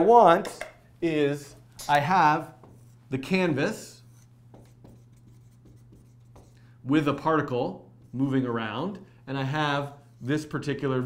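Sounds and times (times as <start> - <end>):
marker writing on whiteboard: 2.4 - 6.7, 8.0 - 8.3.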